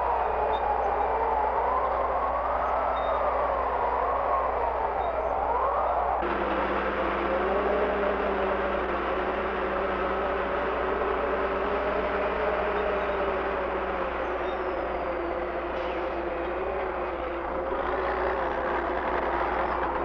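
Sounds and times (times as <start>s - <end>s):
snow blower truck roaring: 5.6s - 20.0s.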